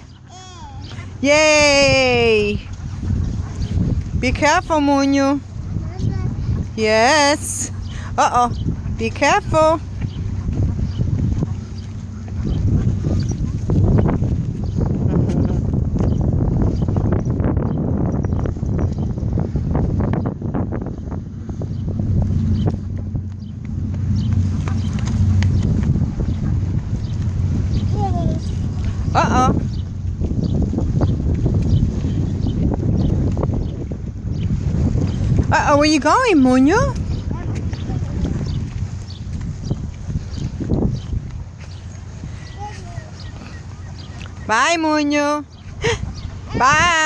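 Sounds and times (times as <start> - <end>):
wind buffeting microphone: 0.0 - 47.0
footsteps on concrete: 9.6 - 17.1, 22.0 - 27.7, 28.4 - 44.4.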